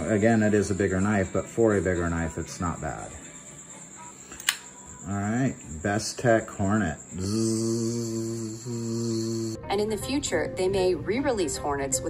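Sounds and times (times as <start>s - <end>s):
folding knife blade snapping open: 4.3s - 4.7s.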